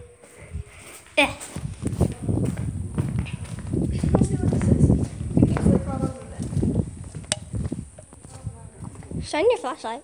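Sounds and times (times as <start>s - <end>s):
soft footsteps walking: 0.0s - 10.0s.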